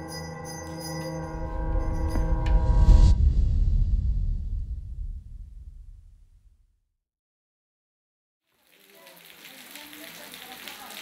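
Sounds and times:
ringing chime-like music: 0.0 - 3.1
low rumble: 1.2 - 6.8.

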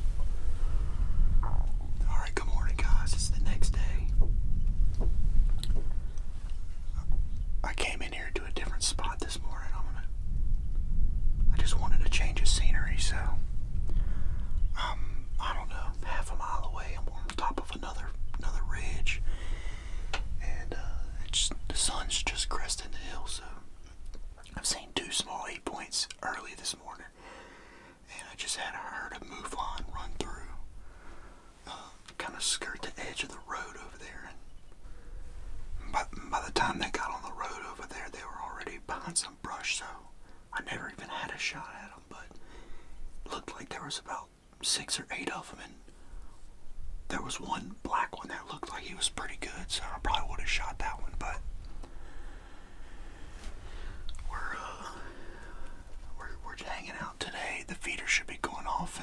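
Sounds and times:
low rumble: 0.0 - 24.8, 48.6 - 56.8
man whispering: 1.4 - 4.2, 6.8 - 10.1, 11.5 - 13.5, 14.7 - 27.2, 28.0 - 30.7, 31.6 - 34.5, 35.8 - 42.5, 43.2 - 45.9, 47.1 - 51.5, 53.7 - 59.0.

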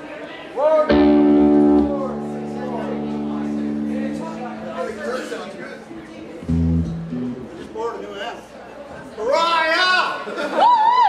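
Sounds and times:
electric guitar chord ringing: 0.9 - 7.8
rising pitch glide: 1.0 - 7.6.

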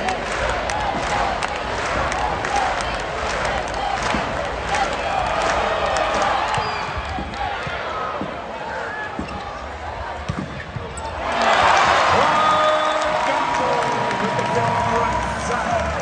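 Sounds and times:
crowd chatter and calls: 0.0 - 16.0.

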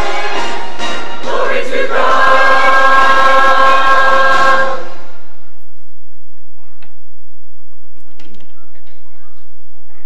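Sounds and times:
low electrical hum: 2.8 - 10.0.

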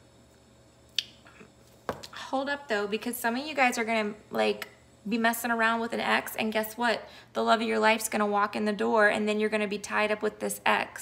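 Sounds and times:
breath: 7.1 - 7.3.

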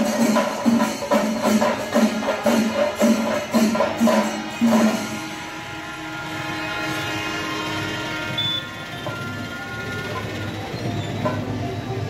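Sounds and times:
brass horns blowing held notes: 4.2 - 9.5.

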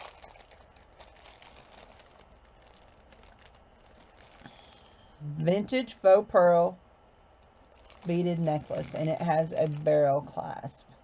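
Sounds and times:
beads clicking: 0.0 - 5.0, 7.4 - 9.9
plastic bag rustling: 0.0 - 5.2, 7.4 - 10.6.

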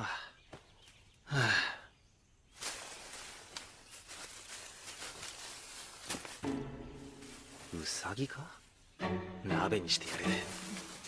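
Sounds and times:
man sighing: 1.3 - 1.9
rustling leaves with crackles: 2.5 - 9.0, 9.9 - 11.0.

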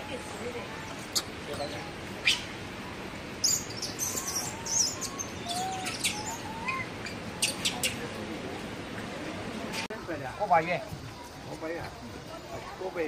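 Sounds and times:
faint low warbling calls: 0.0 - 8.2
short high chirping calls: 3.4 - 8.0.

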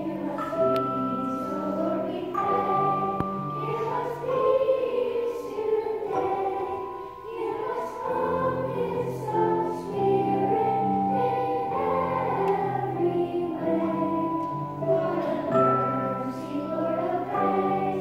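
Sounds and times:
children's choir singing: 0.0 - 18.0.

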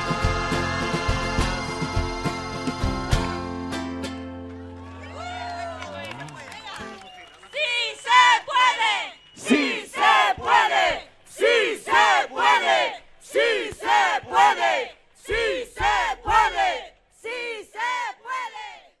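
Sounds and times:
crowd chanting in unison: 7.7 - 19.0
low thump: 15.3 - 16.6.

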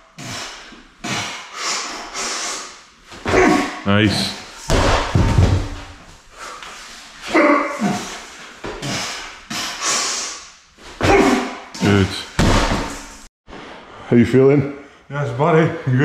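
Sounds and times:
man grunting with effort: 3.2 - 4.3, 7.3 - 8.2, 11.0 - 12.4
heavy weight thuds: 4.6 - 6.0, 11.0 - 13.2.

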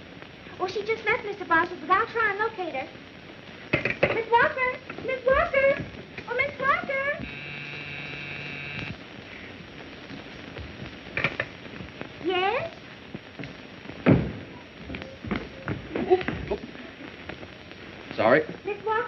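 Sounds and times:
steady buzzing tone: 6.6 - 9.5
low hum: 7.2 - 9.0.

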